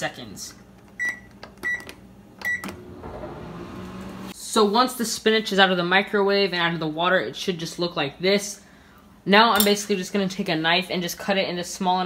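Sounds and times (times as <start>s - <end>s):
microwave oven humming: 0.1s - 4.4s
microwave keypad beep: 1.0s - 2.8s.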